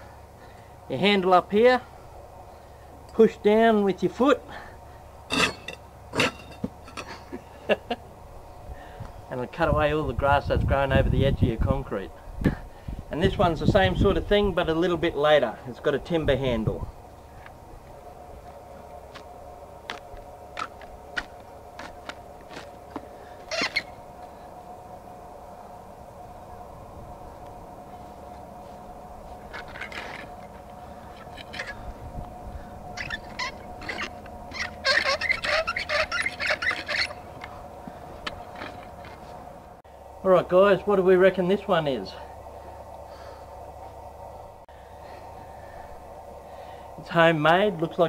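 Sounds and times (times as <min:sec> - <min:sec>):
faint steady hum: 0:00.0 - 0:48.0.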